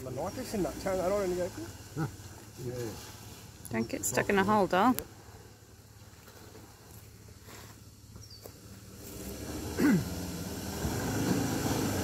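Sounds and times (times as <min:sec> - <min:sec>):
bush ambience: 0:00.0 - 0:12.0
distant engine hum: 0:00.0 - 0:12.0.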